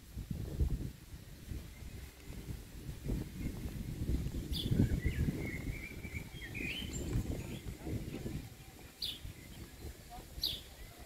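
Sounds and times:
low rumble of outdoor noise: 0.0 - 11.0
small bird singing: 1.6 - 11.0.

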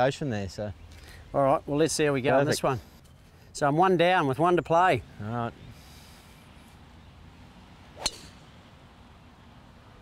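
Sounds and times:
golf club striking ball: 8.0 - 8.5.

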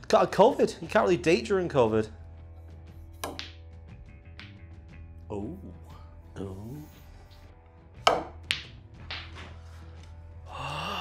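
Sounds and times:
faint background music: 0.0 - 11.0
balls clicking together: 3.2 - 3.6, 4.4 - 4.6, 8.1 - 9.4
cue striking ball click: 3.2 - 3.6, 8.1 - 9.4.

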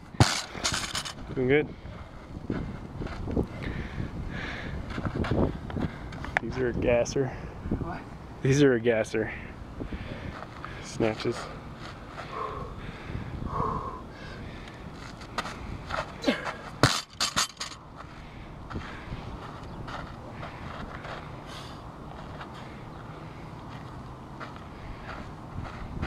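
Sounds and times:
barbell dropped onto dirt: 0.1 - 1.2, 16.2 - 17.8.

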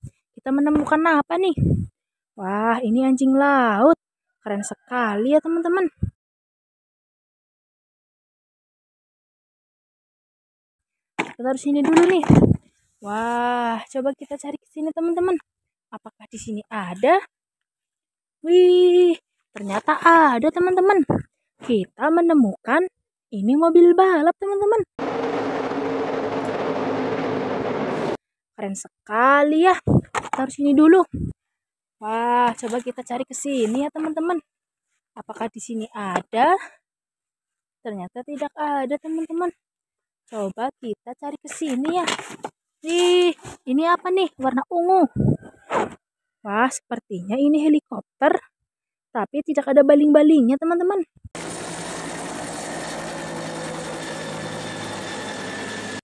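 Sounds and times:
helicopter rotor beat: 24.9 - 28.2, 51.4 - 56.0
helicopter engine hum: 25.0 - 28.2, 51.4 - 56.0
race car engine drone: 25.0 - 28.2.

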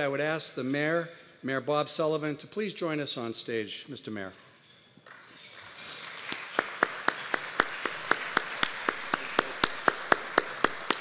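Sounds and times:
audience applause: 5.6 - 11.0
hand claps close to microphone: 5.9 - 11.0.

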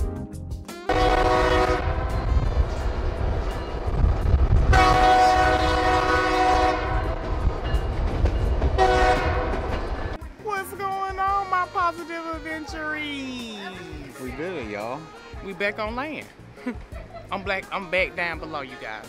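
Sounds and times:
train horn blasts: 0.7 - 2.6, 4.6 - 7.4, 8.8 - 9.8
train car rumbling on rails: 1.0 - 10.2.

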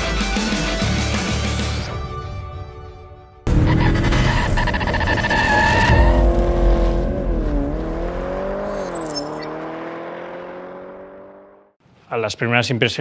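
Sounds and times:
car tyres squealing: 3.5 - 9.8
car engine revving: 3.5 - 11.8.

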